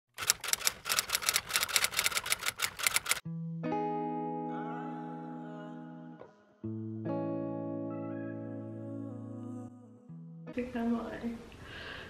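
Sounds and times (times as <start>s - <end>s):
rapid keyboard key clicks: 0.2s - 3.2s.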